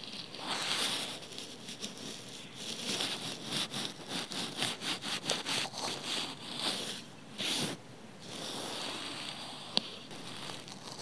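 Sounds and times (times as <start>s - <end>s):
brush scratching on microphone: 0.0s - 11.0s.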